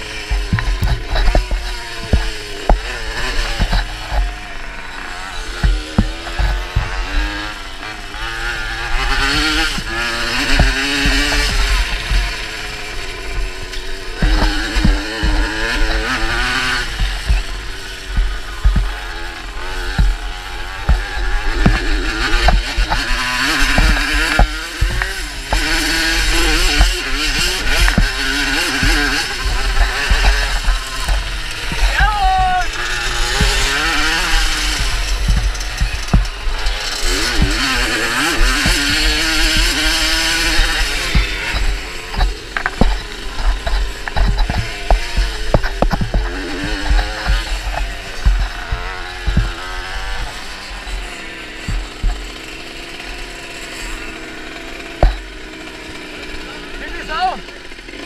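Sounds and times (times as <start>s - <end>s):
moped engine revving: 0.0s - 58.0s.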